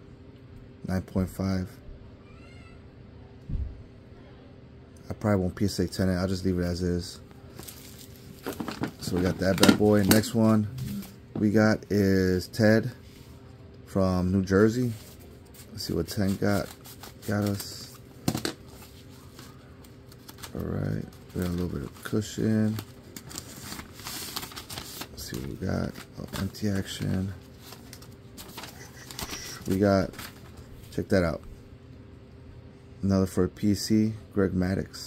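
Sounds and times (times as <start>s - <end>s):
rustling of bubble wrap mailer: 7.5s - 11.2s, 14.5s - 31.1s.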